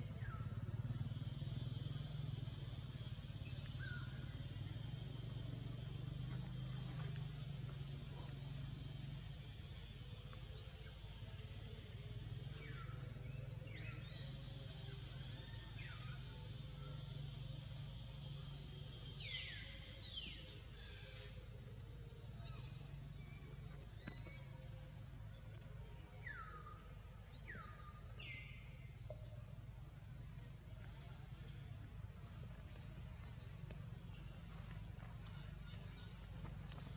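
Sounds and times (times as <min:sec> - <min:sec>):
steady low hum: 0:00.0 - 0:36.9.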